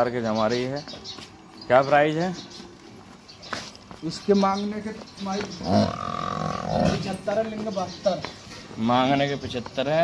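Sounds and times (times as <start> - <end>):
drawn-out animal call: 5.4 - 7.5.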